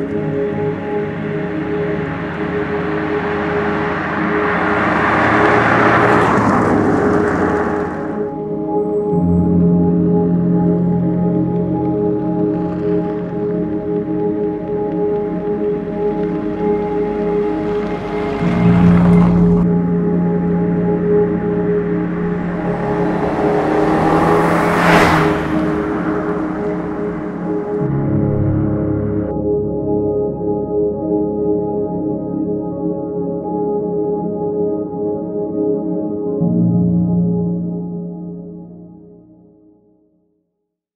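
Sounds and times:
car driving past: 0.0 - 8.6, 15.8 - 29.3
ambient music with held tones: 0.0 - 39.6.

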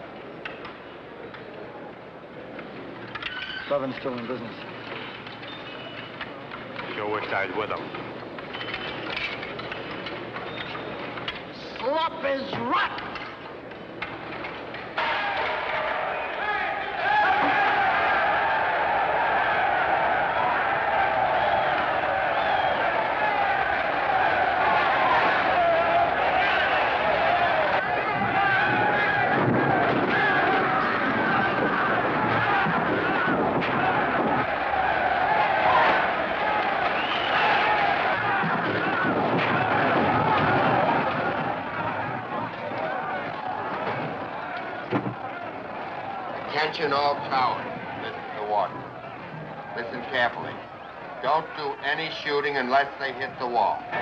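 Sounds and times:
crowd shouting and yelling: 9.0 - 54.0.

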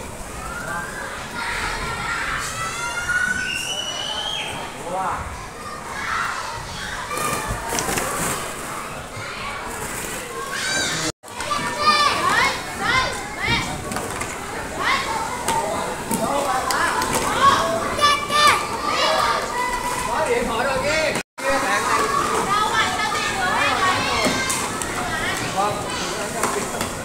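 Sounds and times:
children shouting and squealing: 0.1 - 9.7, 10.3 - 13.8, 16.7 - 20.2, 21.8 - 26.3.

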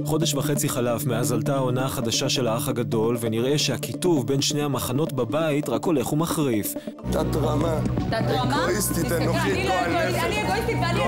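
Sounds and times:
people arguing: 8.1 - 11.0.

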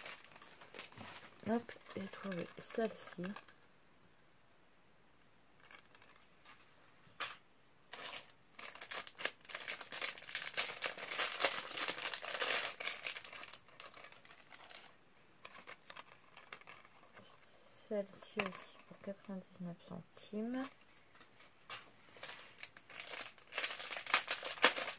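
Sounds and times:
plastic bag crinkling: 0.0 - 3.6, 5.6 - 6.6, 7.9 - 19.6, 20.2 - 24.9.

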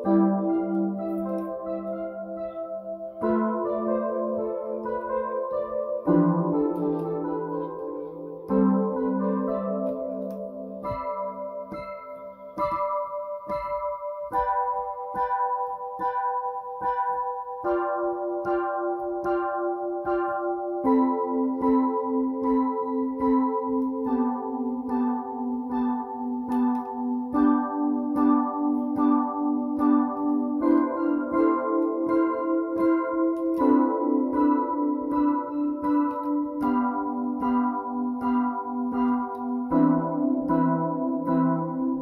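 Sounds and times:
electric piano chords: 0.0 - 42.0.

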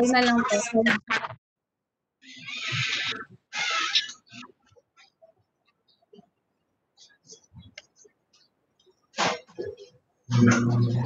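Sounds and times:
harsh garbled microphone noise: 0.0 - 1.4, 2.2 - 5.2, 9.2 - 11.0.

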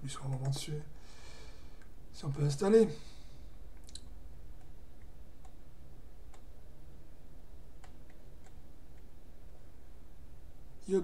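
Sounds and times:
steady low hum: 0.0 - 11.0
light computer mouse clicks: 7.8 - 9.1.

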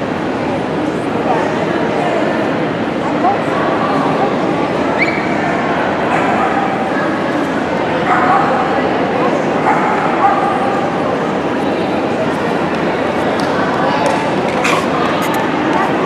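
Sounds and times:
crowd chatter in echoing hall: 0.0 - 16.0.

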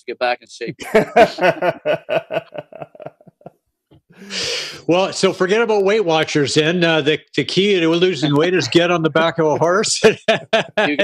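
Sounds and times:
men laughing heartily: 0.8 - 3.5, 8.4 - 11.0.

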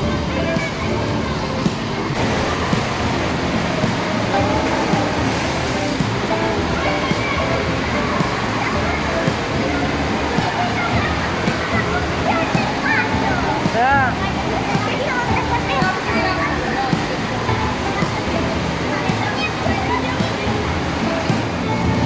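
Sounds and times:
many voices echoing: 0.0 - 22.0
splashing and rushing water: 0.0 - 22.0.

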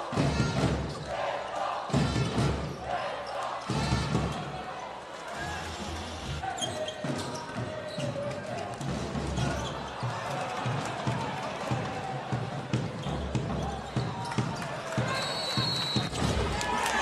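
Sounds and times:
arena noise: 0.0 - 17.0.

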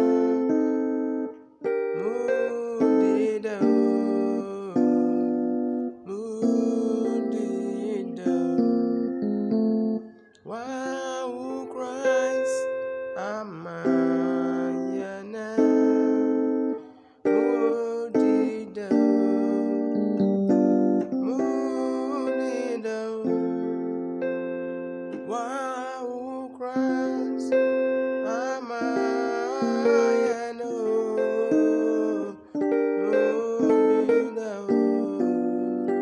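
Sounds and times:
electronic keyboard playing: 0.0 - 36.0.

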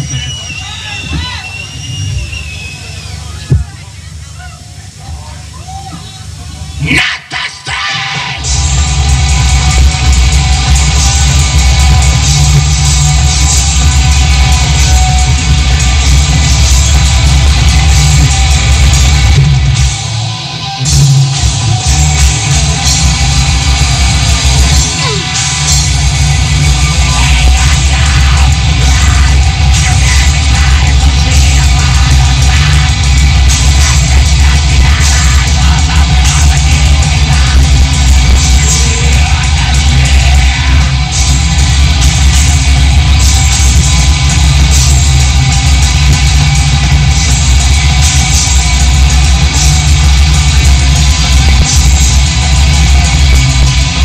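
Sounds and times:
drum kit: 0.0 - 3.8, 7.6 - 54.0
distorted electric guitars: 0.0 - 54.0
heavy bass: 0.0 - 54.0.

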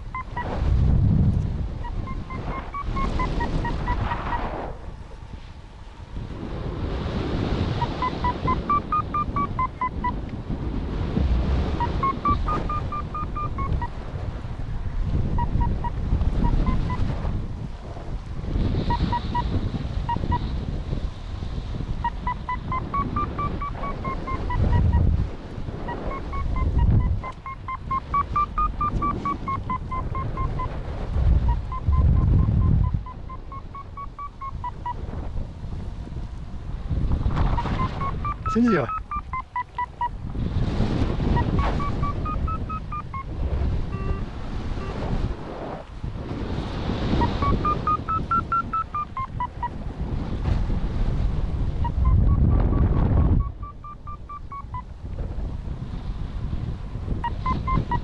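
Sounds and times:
variometer beeping: 0.0 - 0.6, 1.8 - 4.4, 7.6 - 10.3, 11.6 - 14.0, 15.2 - 17.2, 18.9 - 20.5, 22.0 - 35.0, 37.4 - 40.2, 41.2 - 45.3, 47.0 - 49.8, 51.8 - 55.0, 57.2 - 58.0
wind noise on microphone: 0.0 - 58.0.

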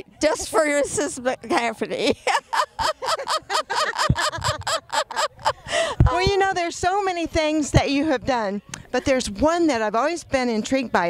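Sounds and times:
women laughing: 1.9 - 6.2.

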